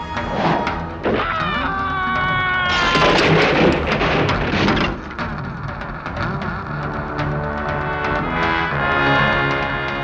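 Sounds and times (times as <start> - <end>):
wood breaking with crash: 2.7 - 5.1
debris clattering: 2.7 - 5.2.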